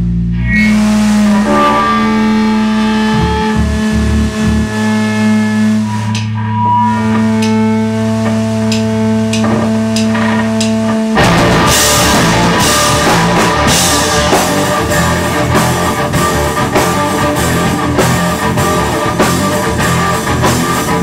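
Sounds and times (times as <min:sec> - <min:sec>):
electric guitar sustained notes: 0:00.0 - 0:21.0
steady low drone: 0:00.0 - 0:21.0
rock band with drums: 0:00.5 - 0:21.0.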